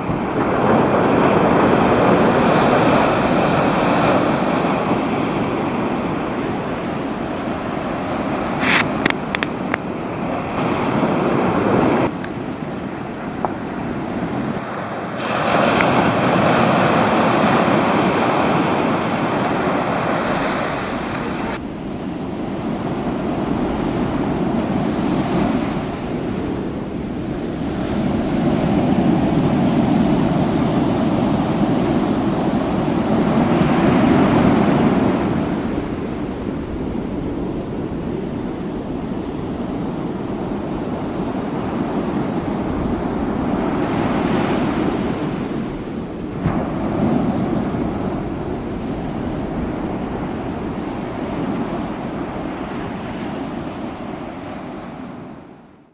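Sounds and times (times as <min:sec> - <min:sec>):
ocean surf breaking: 0:00.0 - 0:55.9
wind buffeting microphone: 0:00.0 - 0:55.9.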